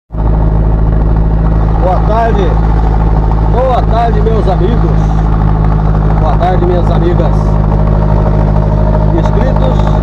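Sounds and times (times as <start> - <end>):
vehicle engine drone: 0.1 - 10.0
wind and road noise: 0.1 - 10.0.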